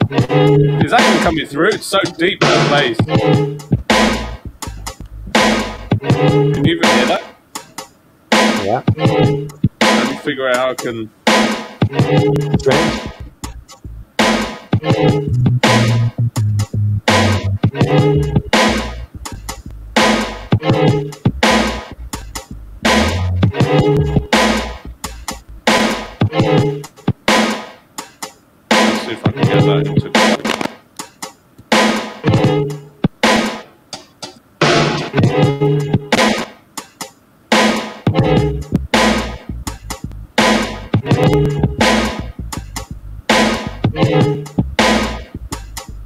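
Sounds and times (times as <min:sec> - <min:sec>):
sample-based beat: 0:00.0 - 0:46.0.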